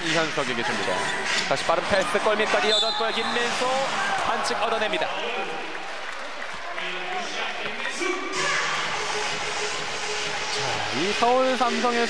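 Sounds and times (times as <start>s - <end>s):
crowd noise: 0.0s - 12.0s
music over arena pa: 0.0s - 12.0s.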